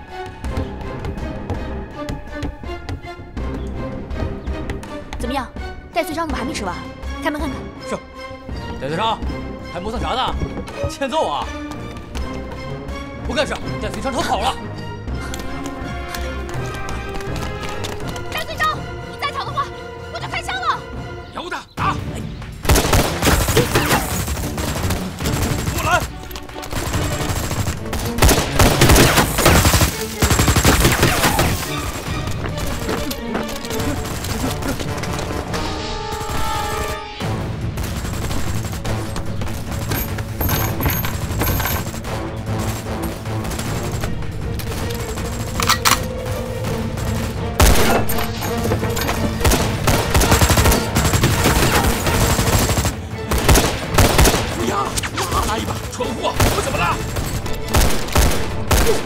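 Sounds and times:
dramatic background music: 0.0 - 59.0
gunfire bursts: 22.6 - 32.3, 37.7 - 40.4, 41.9 - 48.2, 49.3 - 59.0.

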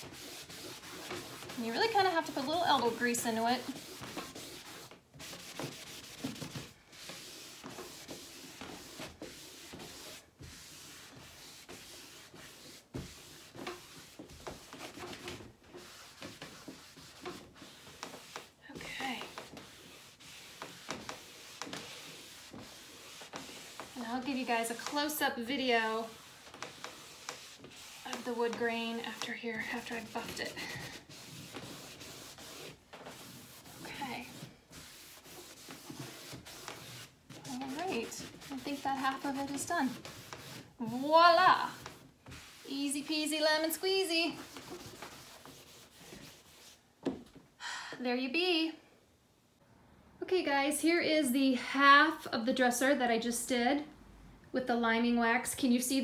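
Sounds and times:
cloth rag rubbing on wood: 0.0 - 46.8.

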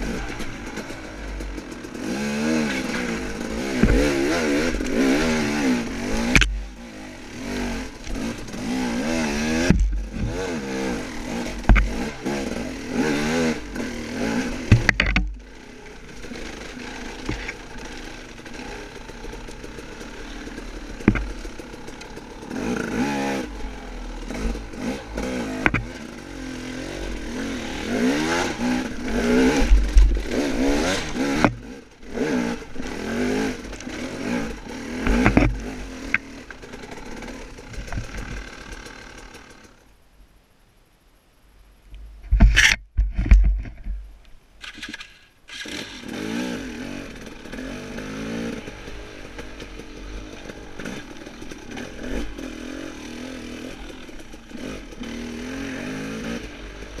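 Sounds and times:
dirt bike engine revving: 0.0 - 39.8, 44.6 - 57.0.

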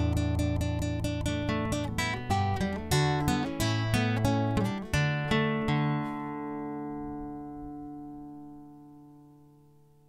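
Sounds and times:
classical guitar chord ringing: 0.0 - 10.0.

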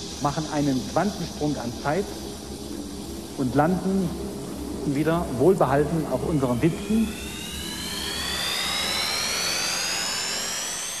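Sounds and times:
steady hiss: 0.0 - 11.0
whining tones rising in pitch: 2.2 - 11.0.

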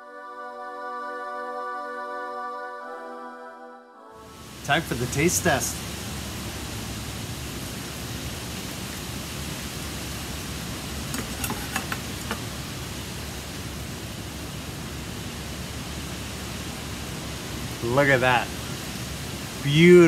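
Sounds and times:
steady hiss: 4.2 - 20.0.

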